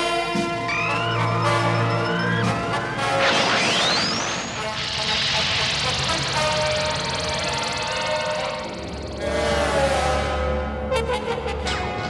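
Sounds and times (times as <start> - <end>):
background music: 0.0 - 12.0
spacecraft engines firing: 2.9 - 9.5.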